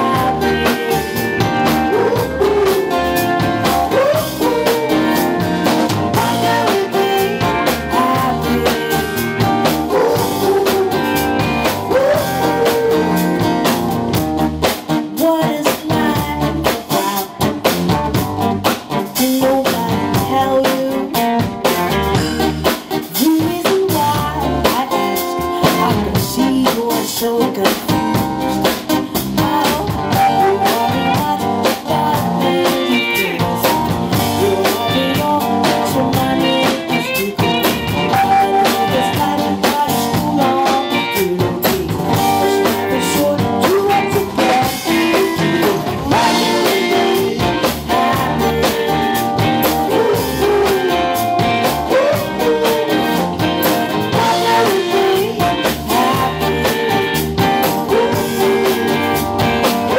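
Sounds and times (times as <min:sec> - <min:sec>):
woman singing: 0:00.0 - 0:13.4, 0:15.1 - 0:17.8, 0:18.9 - 0:21.5, 0:23.0 - 0:28.3, 0:29.0 - 0:59.9
live band playing: 0:00.0 - 0:59.9.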